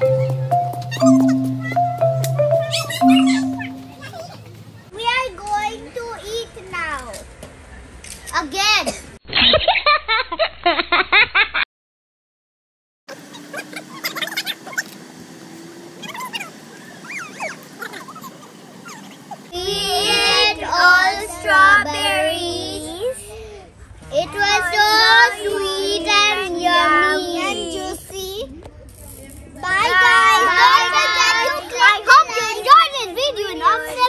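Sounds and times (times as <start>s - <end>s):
children giggling: 2.6s - 4.5s, 13.1s - 14.9s, 16.0s - 19.5s
children singing: 19.6s - 23.0s.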